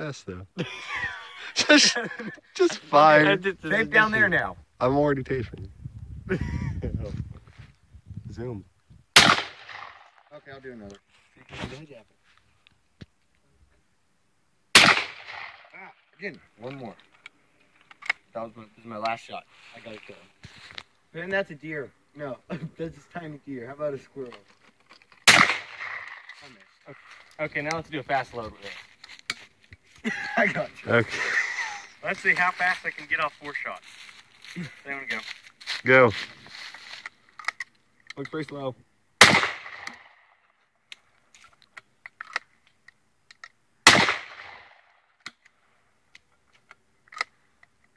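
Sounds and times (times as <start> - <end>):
gunshot with echo: 9.2 - 10.1, 14.8 - 15.7, 25.3 - 26.2, 39.2 - 40.0, 43.9 - 44.6
shotgun reload metallic clicks: 42.0 - 44.3.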